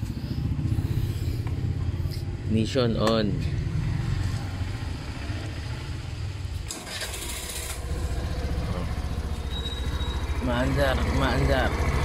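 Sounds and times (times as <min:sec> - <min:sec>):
scooter engine starting and idling: 0:06.2 - 0:12.0.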